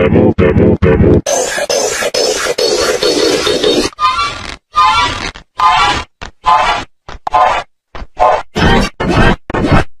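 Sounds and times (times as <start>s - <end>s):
pitch-shifted stuttering voice bursts: 0.0s - 3.9s, 8.2s - 9.9s.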